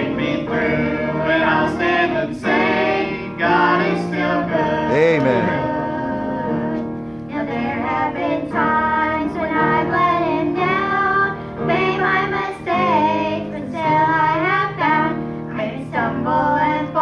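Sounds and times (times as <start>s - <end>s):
sustained instrumental backing: 1.3s - 7.5s
girl and woman singing: 5.1s - 17.0s.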